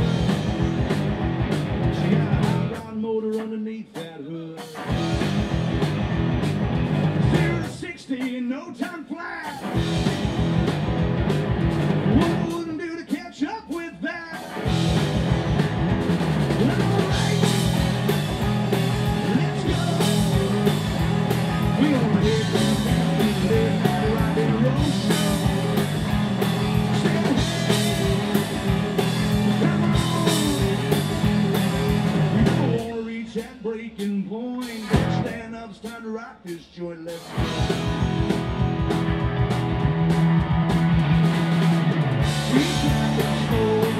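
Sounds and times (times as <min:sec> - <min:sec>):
rock band playing instrumental: 0:00.0 - 0:43.9.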